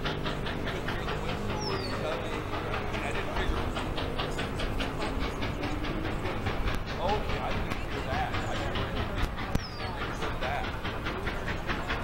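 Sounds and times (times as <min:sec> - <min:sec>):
steady rumble: 0:00.0 - 0:12.0
steam locomotive exhaust beating: 0:00.0 - 0:12.0.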